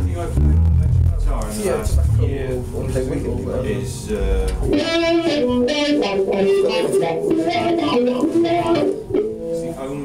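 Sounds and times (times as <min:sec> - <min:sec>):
electric guitar melody: 0:00.0 - 0:03.5, 0:04.1 - 0:10.0
deep low tone: 0:00.0 - 0:04.8.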